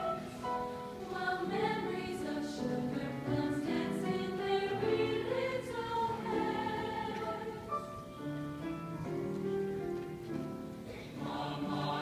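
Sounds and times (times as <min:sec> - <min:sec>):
mixed choir singing: 0:00.0 - 0:08.0, 0:10.9 - 0:12.0.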